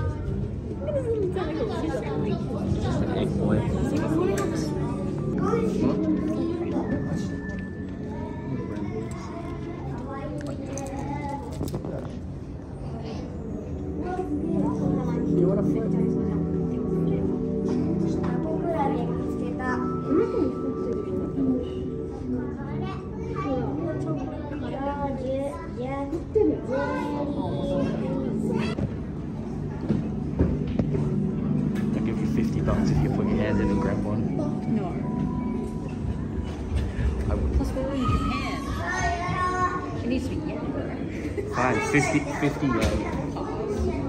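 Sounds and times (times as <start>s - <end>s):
background chatter of voices: 0.0s - 44.0s
background music: 0.0s - 44.0s.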